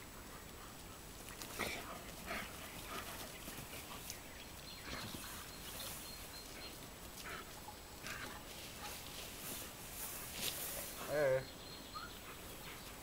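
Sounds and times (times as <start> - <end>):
dogs making play sounds: 0.0 - 13.0.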